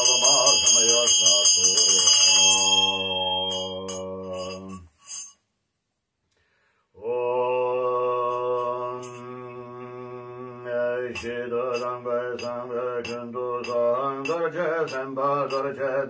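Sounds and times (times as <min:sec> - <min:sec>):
man chanting: 0:00.0 - 0:04.9, 0:07.0 - 0:16.0.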